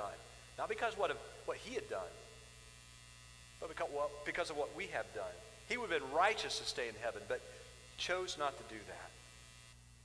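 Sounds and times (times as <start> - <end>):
man speaking: 0.0 - 2.3, 3.6 - 9.2
electrical mains hum: 0.0 - 10.0.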